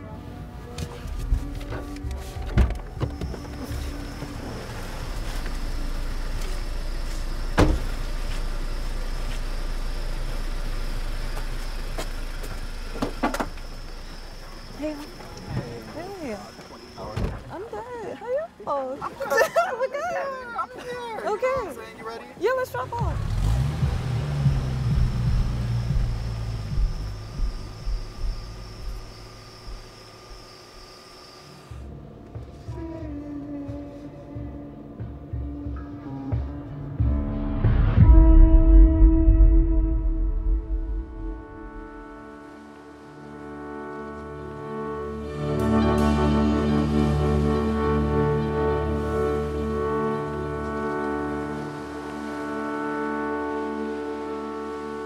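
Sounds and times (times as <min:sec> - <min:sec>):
car pulling away: 0:00.2 - 0:17.9, 0:22.4 - 0:32.7, 0:40.3 - 0:55.0
car door banging shut: 0:07.5 - 0:07.9.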